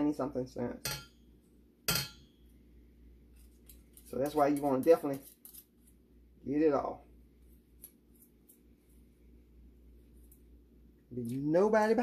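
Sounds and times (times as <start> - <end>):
utensil clinking on metal bowl: 0.8 - 1.2, 1.9 - 2.4.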